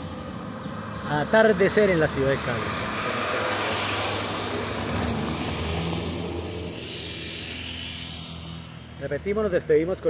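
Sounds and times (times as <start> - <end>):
general road traffic: 0.0 - 10.0
vehicle engine hum and tyre noise: 0.0 - 10.0.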